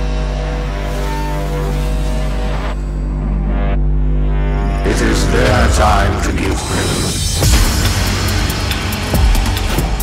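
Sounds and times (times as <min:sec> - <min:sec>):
hardcore electronic music: 0:00.0 - 0:10.0.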